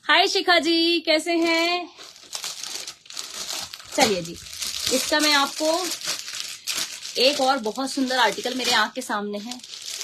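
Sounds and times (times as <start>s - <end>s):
plastic packaging crinkling: 1.2s - 10.0s.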